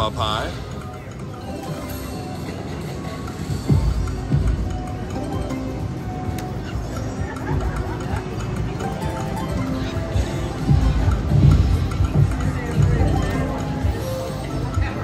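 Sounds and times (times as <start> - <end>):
slot machine game music: 0.0 - 15.0.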